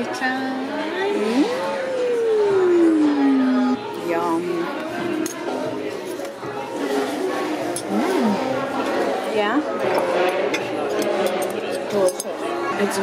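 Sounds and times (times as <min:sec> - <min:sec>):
people talking: 0:00.0 - 0:04.9, 0:07.8 - 0:08.6
tableware clinking: 0:09.8 - 0:13.0.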